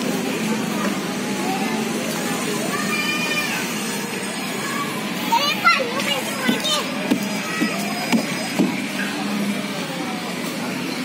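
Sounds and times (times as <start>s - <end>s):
hubbub of voices: 0.0s - 11.0s
young children calling: 2.4s - 9.2s.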